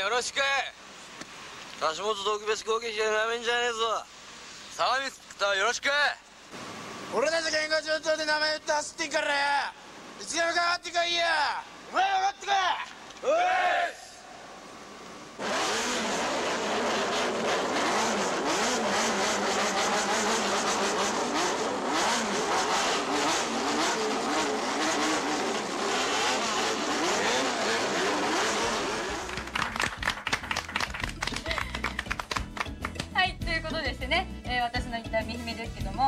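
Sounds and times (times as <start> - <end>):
motorcycles revving: 15.4 - 29.6
music with steady beat: 32.4 - 36.0.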